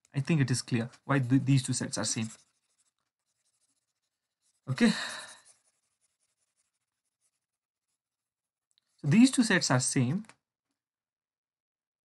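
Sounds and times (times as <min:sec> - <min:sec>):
man speaking: 0:00.2 - 0:02.4, 0:04.7 - 0:05.2, 0:09.0 - 0:10.3.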